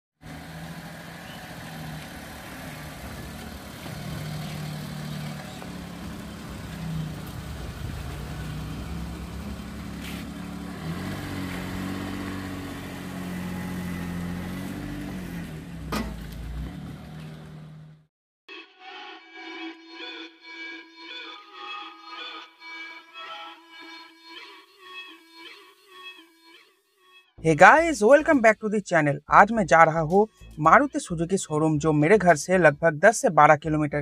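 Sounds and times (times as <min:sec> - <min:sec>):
car engine idling: 0:00.2 - 0:18.0.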